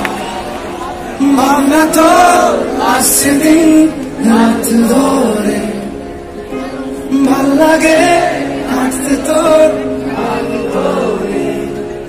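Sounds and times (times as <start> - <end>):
audience singing along: 0.0 - 12.0
piano accompaniment: 1.0 - 12.0
man singing: 1.2 - 6.1, 7.0 - 12.0.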